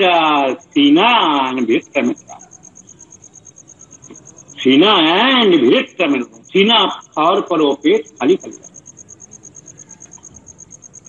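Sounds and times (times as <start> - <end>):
insect chirping: 0.0 - 11.0.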